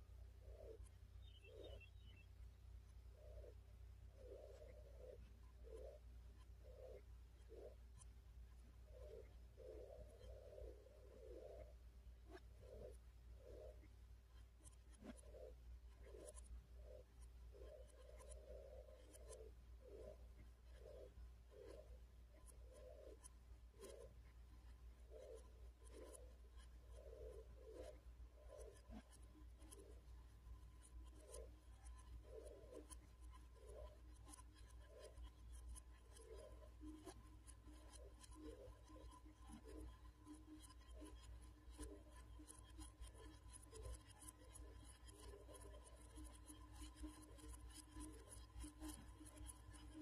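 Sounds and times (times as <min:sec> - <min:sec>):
scratchy rubbing: 0:12.3 - 0:50.0.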